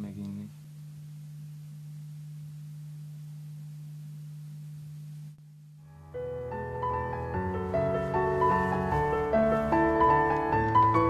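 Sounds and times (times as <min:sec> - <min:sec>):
steady low hum: 0:00.0 - 0:10.8.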